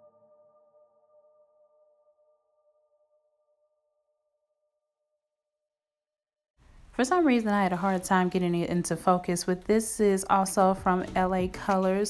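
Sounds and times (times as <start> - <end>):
faint sustained background music: 0.0 - 4.6, 6.8 - 12.0.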